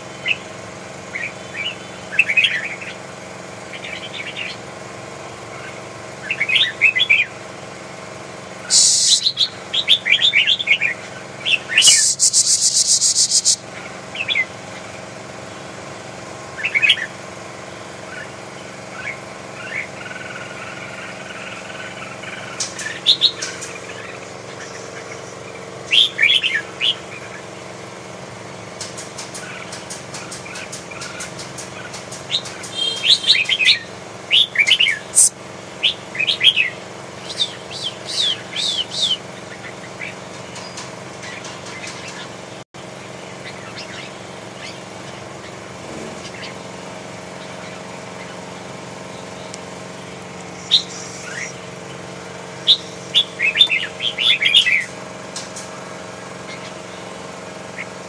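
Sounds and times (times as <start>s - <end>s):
low background hum: 0.0s - 58.0s
birds chirping: 8.6s - 14.9s, 28.9s - 42.6s, 47.3s - 55.0s
sharp clicks: 11.8s - 13.6s.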